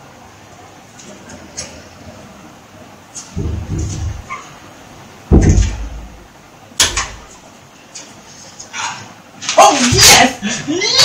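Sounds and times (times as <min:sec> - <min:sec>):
door thuds: 0:05.3 - 0:06.2.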